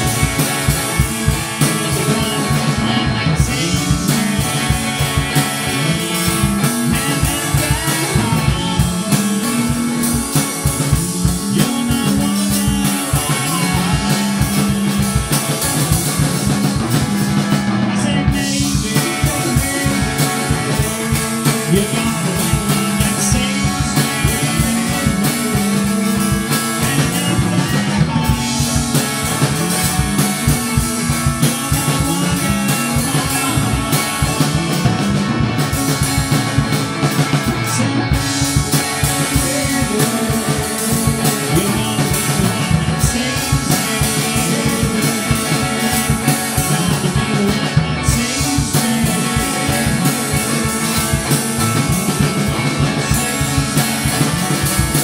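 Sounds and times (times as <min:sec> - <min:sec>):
loud rock music: 0:00.0 - 0:55.0.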